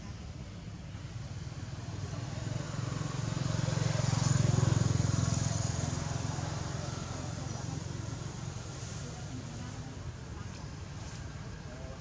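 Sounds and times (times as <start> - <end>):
motor vehicle passing by: 1.3 - 12.0.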